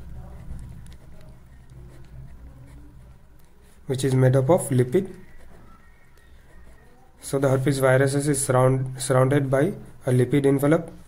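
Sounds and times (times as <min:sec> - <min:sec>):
pen scratching on paper: 0:00.0 - 0:08.2.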